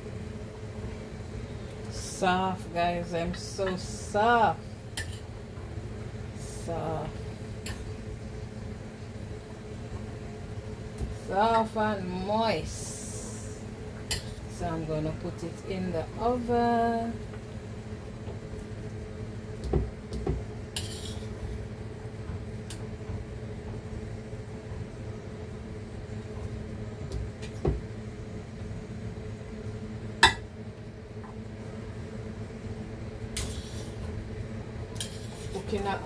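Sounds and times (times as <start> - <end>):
low kitchen hum: 0.0 - 36.0.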